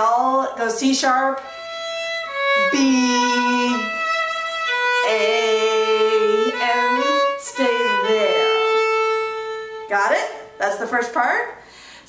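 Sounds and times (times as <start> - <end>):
solo violin playing waltz: 1.4 - 11.1.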